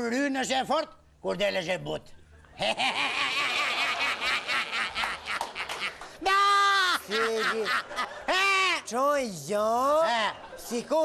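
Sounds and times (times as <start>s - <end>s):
studio audience laughing: 2.6s - 6.2s, 7.0s - 8.5s, 10.0s - 11.0s.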